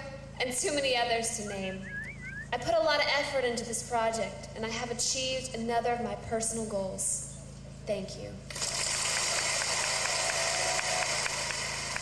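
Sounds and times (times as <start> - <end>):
audience applause: 8.6 - 12.0.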